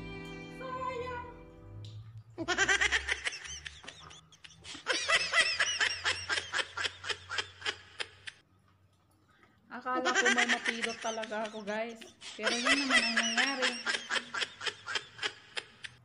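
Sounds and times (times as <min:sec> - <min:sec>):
woman laughing: 0:02.4 - 0:08.3, 0:10.0 - 0:15.9.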